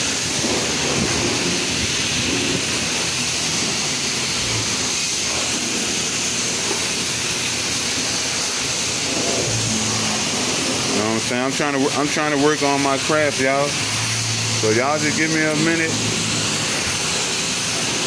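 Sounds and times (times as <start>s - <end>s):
high-pressure water spray hissing: 0.0s - 18.0s.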